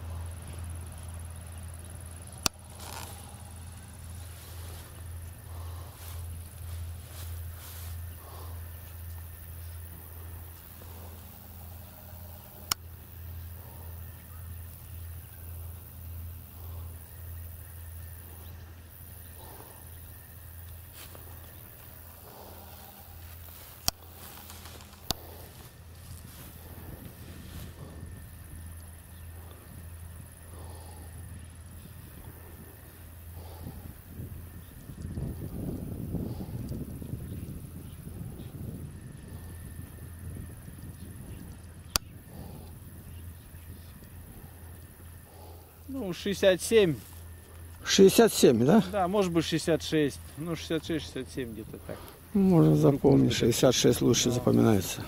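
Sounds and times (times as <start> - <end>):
distant freight train rumble: 0.0 - 55.0
sharp clicks: 12.5 - 12.9, 23.8 - 25.2, 41.9 - 42.2.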